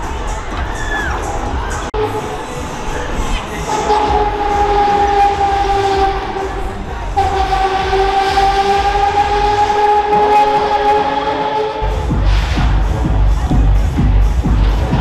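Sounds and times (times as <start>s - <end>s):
horn blasts: 2.0s - 2.7s, 3.4s - 12.9s.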